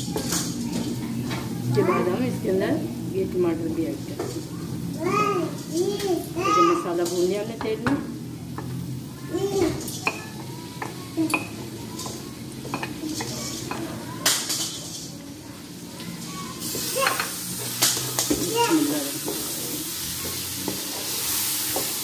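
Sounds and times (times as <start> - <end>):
food sizzling in hot oil: 0.0 - 22.0
spatula scraping and knocking pan: 16.6 - 22.0.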